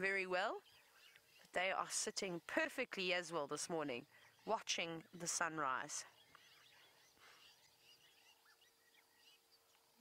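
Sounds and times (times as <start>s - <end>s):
faint bird chirps: 0.0s - 10.0s
faint steady tone: 0.0s - 10.0s.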